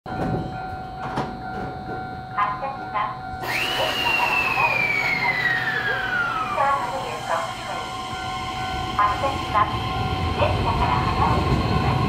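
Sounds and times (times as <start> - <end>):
train electrical whine: 0.1 - 12.0.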